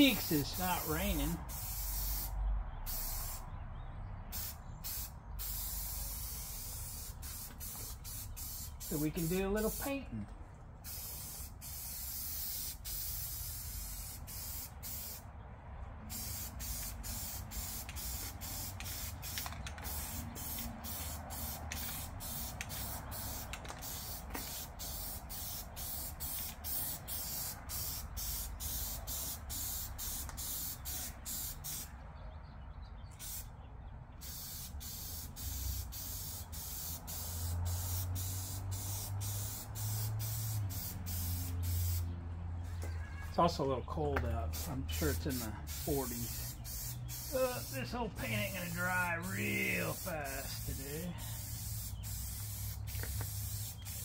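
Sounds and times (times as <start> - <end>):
aerosol spray can hissing: 0.0 - 2.3, 2.9 - 3.4, 4.3 - 10.0, 10.9 - 15.2, 16.1 - 31.9, 33.2 - 33.5, 34.2 - 42.1, 44.5 - 54.0.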